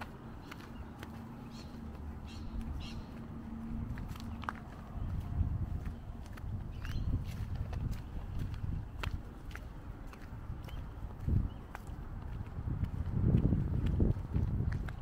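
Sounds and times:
footsteps on pavement: 0:00.0 - 0:15.0.

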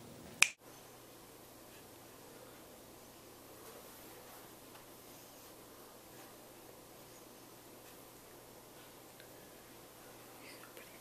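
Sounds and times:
finger snap: 0:00.4 - 0:00.6.

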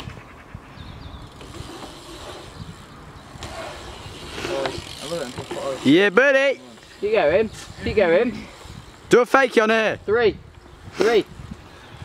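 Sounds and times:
bike tyres rolling on concrete: 0:01.1 - 0:12.0.

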